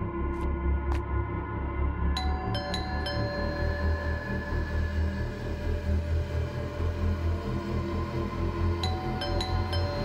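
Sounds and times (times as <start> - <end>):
low wavering drone: 0.0 - 10.0
ringing metallic tones: 8.8 - 10.0.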